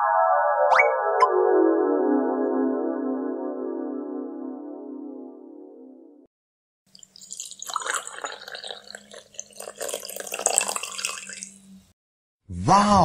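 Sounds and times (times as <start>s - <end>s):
liquid pouring and splashing: 6.9s - 11.7s.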